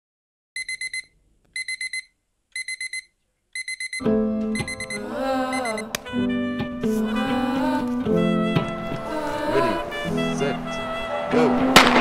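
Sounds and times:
digital alarm clock beeping: 0:00.6 - 0:05.8
music: 0:04.0 - 0:12.0
alarm button click: 0:04.6 - 0:05.0.

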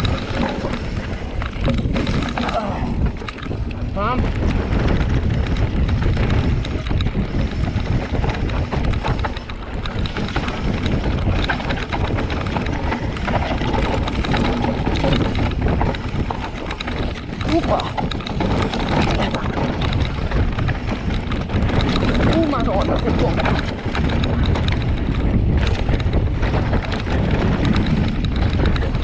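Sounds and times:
mountain bike clattering over rocks: 0:00.0 - 0:29.0
wind buffeting microphone: 0:00.0 - 0:29.0.

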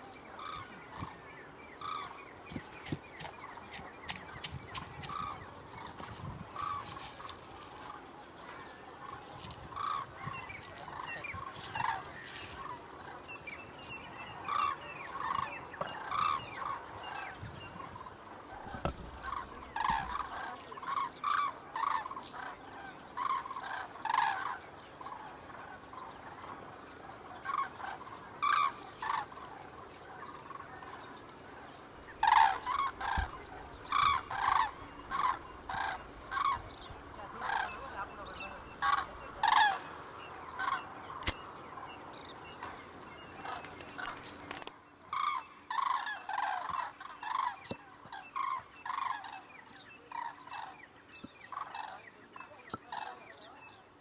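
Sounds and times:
fowl calling: 0:01.8 - 0:13.2, 0:14.3 - 0:39.9, 0:45.1 - 0:54.0.

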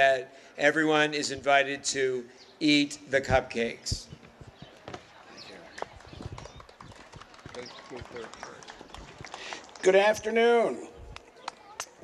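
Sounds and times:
faint crowd chatter: 0:01.1 - 0:12.0
handling noise on microphone: 0:03.3 - 0:05.2.

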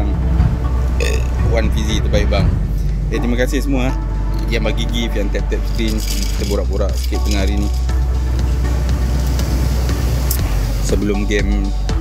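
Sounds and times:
loud low rumble: 0:00.0 - 0:10.9.

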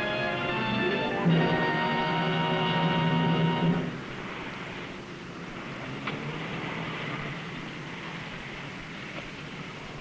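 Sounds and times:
low music notes: 0:00.0 - 0:04.1
steady hiss: 0:00.0 - 0:10.0.

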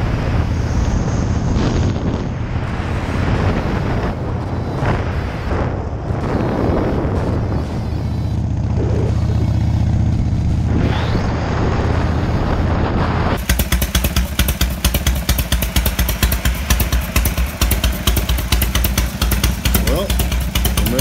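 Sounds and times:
motorcycle idling: 0:00.0 - 0:12.8, 0:13.4 - 0:21.0
wind rush: 0:00.0 - 0:13.4
motorcycle riding: 0:00.0 - 0:21.0.

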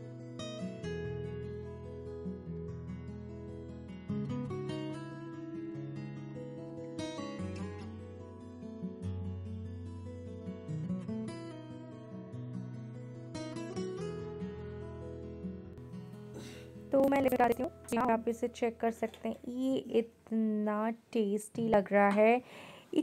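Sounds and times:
acoustic guitar music: 0:00.0 - 0:20.3.

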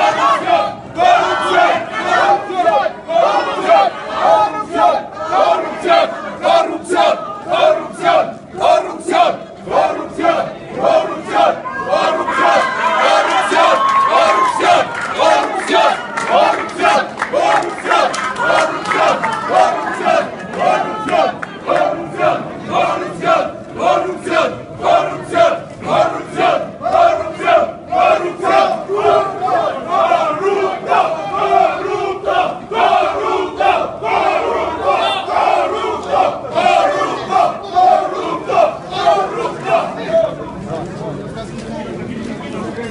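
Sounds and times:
crowd chanting in unison: 0:00.0 - 0:40.3.

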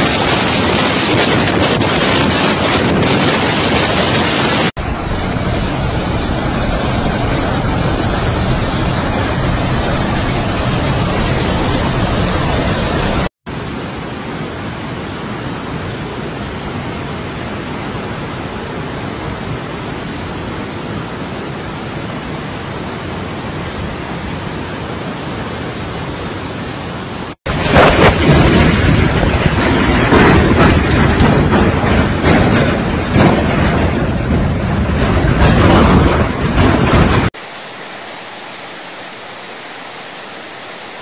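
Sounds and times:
driving rain: 0:00.0 - 0:41.0
floodwater rushing down street: 0:00.0 - 0:41.0
strong wind: 0:00.0 - 0:41.0.

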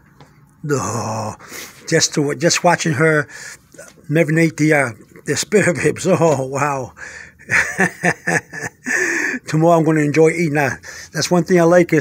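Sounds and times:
man laughing: 0:07.4 - 0:09.5.

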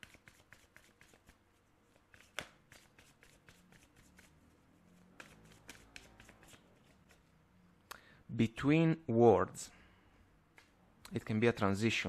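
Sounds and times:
cards being shuffled by hand: 0:00.0 - 0:07.3.

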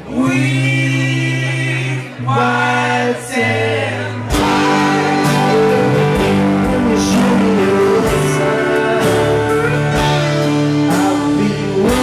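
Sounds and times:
voices singing in harmony: 0:00.0 - 0:12.0
steady bass note: 0:04.3 - 0:11.2
band playing with a beat: 0:04.3 - 0:12.0.

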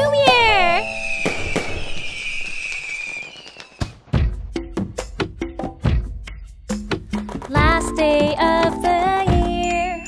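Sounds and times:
firework crackling: 0:00.2 - 0:04.2
music with falling glide: 0:00.5 - 0:02.3
firework bangs: 0:00.5 - 0:04.3
whistle dropping in pitch: 0:00.6 - 0:04.0.

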